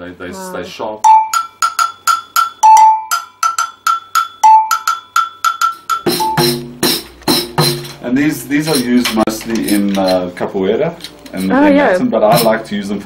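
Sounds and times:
agogo bell struck with stick: 0:01.0 - 0:08.0
pandeiro drum and jingles: 0:01.0 - 0:10.2, 0:11.4 - 0:12.8.

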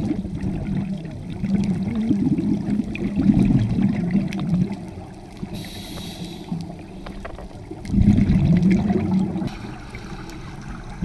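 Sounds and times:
underwater bubbles gurgling: 0:00.0 - 0:11.0
regulator inhalation hiss: 0:05.5 - 0:06.6.

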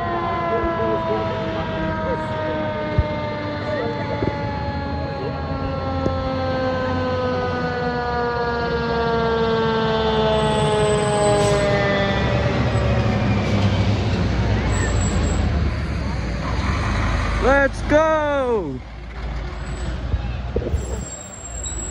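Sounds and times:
fire truck siren winding down: 0:00.0 - 0:18.8
truck engines rumbling: 0:00.0 - 0:21.9.

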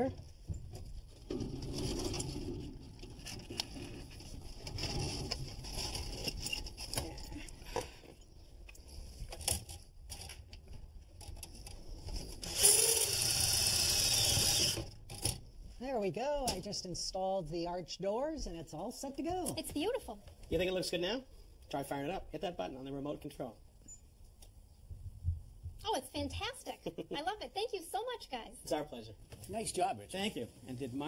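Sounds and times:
metal vent liner scraping: 0:01.3 - 0:08.0.

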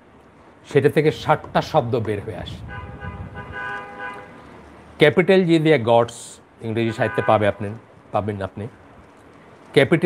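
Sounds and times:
steady horn tone: 0:02.5 - 0:04.6, 0:06.9 - 0:07.8.

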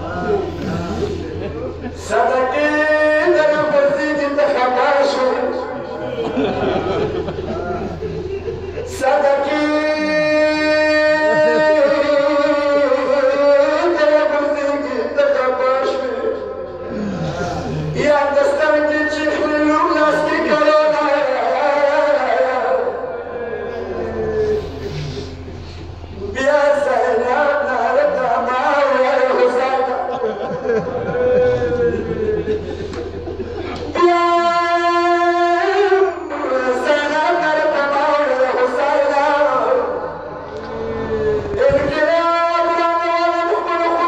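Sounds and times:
man chanting a lament: 0:00.0 - 0:44.0.

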